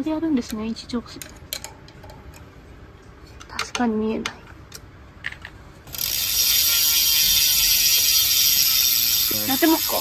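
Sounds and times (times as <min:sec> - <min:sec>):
bike freehub ratcheting buzz: 0:05.9 - 0:10.0.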